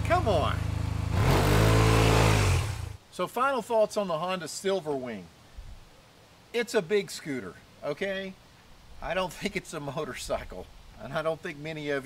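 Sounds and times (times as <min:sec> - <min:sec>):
motorcycle engine revving: 0:00.0 - 0:03.0.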